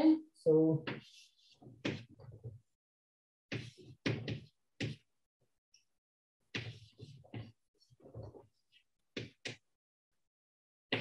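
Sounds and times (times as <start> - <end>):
chalk tapping and scraping: 0.8 - 2.6, 3.5 - 5.1, 6.5 - 9.7.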